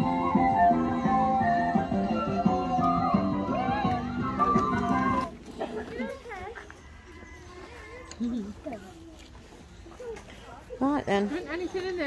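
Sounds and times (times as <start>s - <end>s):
background music: 0.0s - 5.4s.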